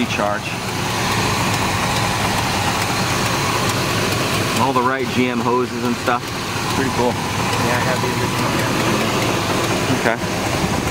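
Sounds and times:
car engine idling: 0.0s - 10.9s.

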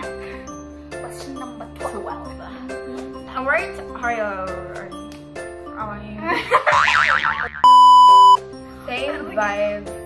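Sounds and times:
background music: 0.0s - 10.0s
wobbling boing sound: 6.8s - 7.8s
electronic beep: 7.6s - 8.4s.

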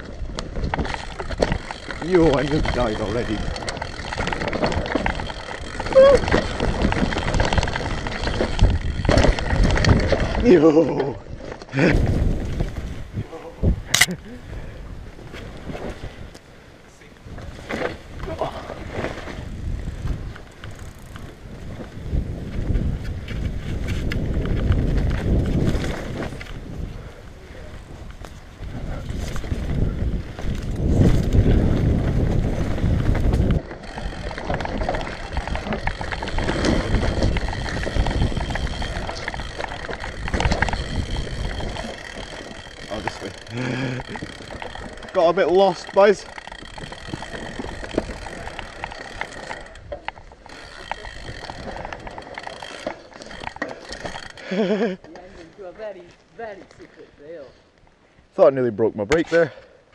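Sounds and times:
tyres rumbling over dirt: 0.0s - 13.8s, 17.2s - 55.2s
bike rattling: 0.0s - 58.0s.

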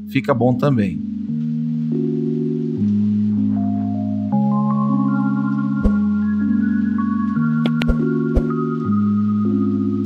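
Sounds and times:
soft instrumental chords: 0.8s - 10.0s.

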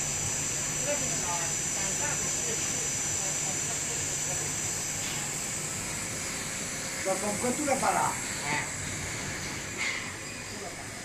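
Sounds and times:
machine humming and hissing: 0.0s - 11.0s.

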